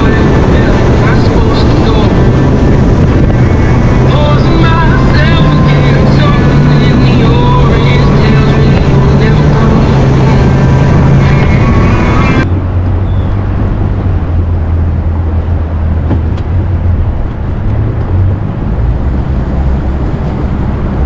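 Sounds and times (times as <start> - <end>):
outboard motor droning: 0.0 - 21.0
rush of wind and water: 0.0 - 21.0.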